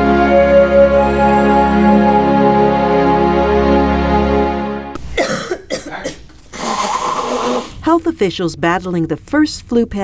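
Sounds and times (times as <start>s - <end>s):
held music chord: 0.0s - 5.0s
woman coughing: 5.1s - 7.6s.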